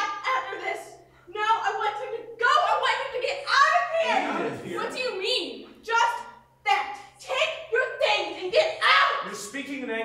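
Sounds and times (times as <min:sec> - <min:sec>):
people arguing angrily: 0:00.0 - 0:09.8.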